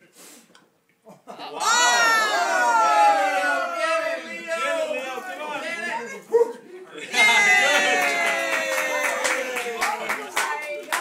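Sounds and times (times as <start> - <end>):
loud yelp: 1.6 - 4.2.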